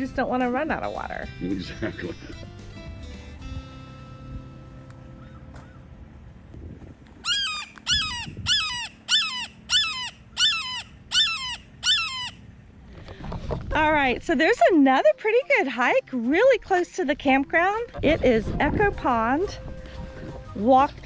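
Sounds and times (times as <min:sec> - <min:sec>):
music: 0:00.0 - 0:05.2, 0:14.0 - 0:21.0
hawk screaming: 0:07.2 - 0:12.5.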